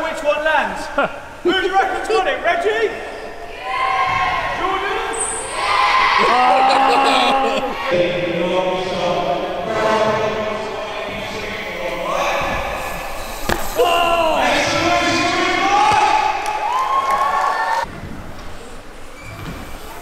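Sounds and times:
crowd shouting: 0:05.4 - 0:08.4
sharp thump: 0:13.4 - 0:13.8.

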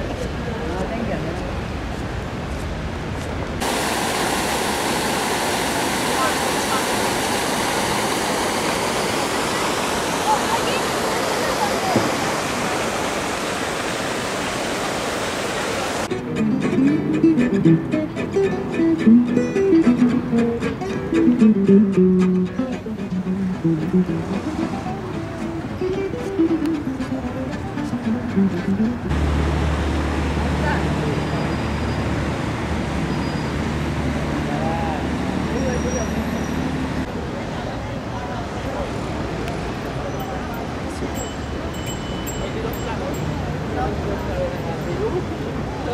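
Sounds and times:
traffic and engine noise: 0:00.0 - 0:45.9
fountain jets splashing into pool: 0:03.6 - 0:16.1
faint voices: 0:09.2 - 0:13.1
murmur of voices: 0:09.4 - 0:12.7, 0:34.5 - 0:45.9
guitar music: 0:16.1 - 0:29.6.

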